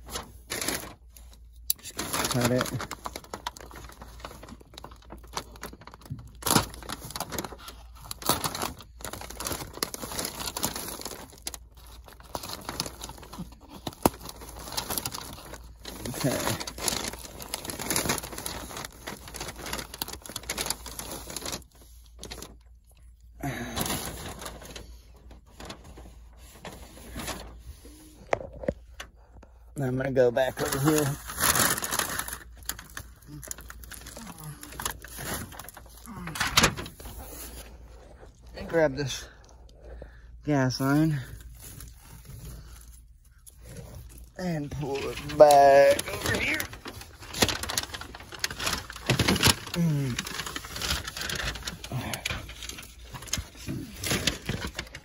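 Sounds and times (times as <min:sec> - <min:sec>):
plastic sheeting crinkling: 0:00.0 - 0:55.0
sharp crackles: 0:44.6 - 0:55.0.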